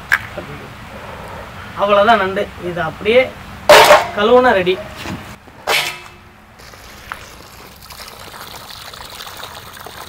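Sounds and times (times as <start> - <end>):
water trickling in a metal basin: 6.6 - 10.0.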